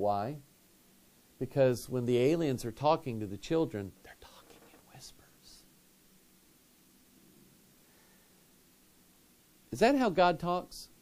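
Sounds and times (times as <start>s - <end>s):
person whispering: 4.0s - 5.7s.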